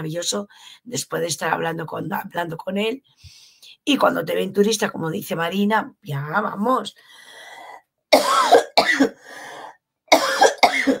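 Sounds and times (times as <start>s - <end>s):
breathing: 0.5s - 0.9s, 3.0s - 3.8s, 7.0s - 7.8s, 9.2s - 9.8s
woman coughing: 8.1s - 9.3s, 10.1s - 11.0s.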